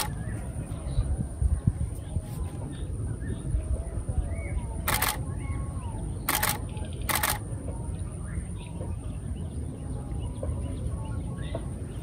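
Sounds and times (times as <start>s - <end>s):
camera shutter clicks: 4.9s - 5.2s, 6.3s - 7.4s.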